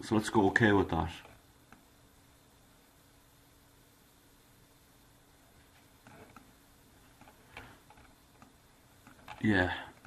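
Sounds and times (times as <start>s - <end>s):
computer mouse clicks: 6.0s - 6.5s, 7.1s - 10.0s.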